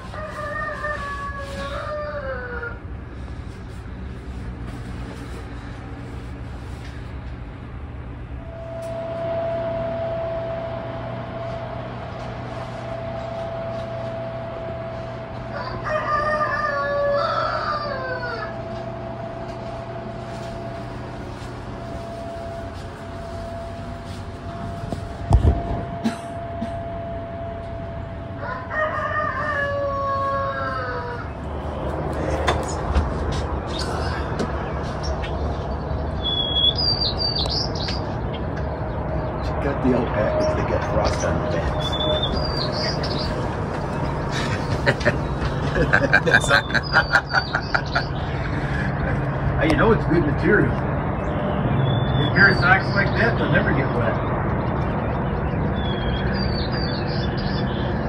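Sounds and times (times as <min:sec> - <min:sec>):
rooster crowing: 0:00.0 - 0:03.0, 0:13.5 - 0:19.2, 0:26.0 - 0:32.4, 0:41.5 - 0:48.1
steady hum: 0:00.0 - 0:58.0
small birds chirping: 0:33.7 - 0:44.8, 0:46.4 - 0:48.6, 0:50.2 - 0:58.0.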